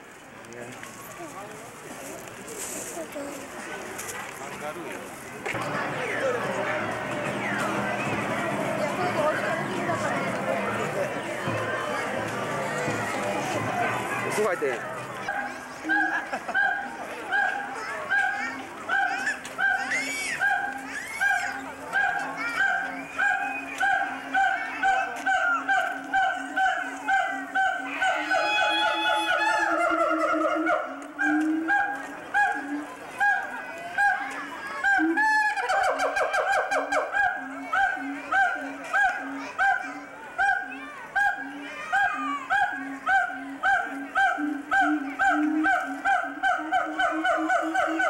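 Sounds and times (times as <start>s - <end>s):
animal calling: 15.2s - 48.0s
primate hooting: 15.8s - 39.8s, 40.4s - 48.0s.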